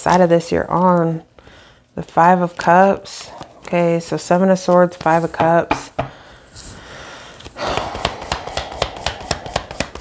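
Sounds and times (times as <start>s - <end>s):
rapid card flicks: 7.4s - 10.0s.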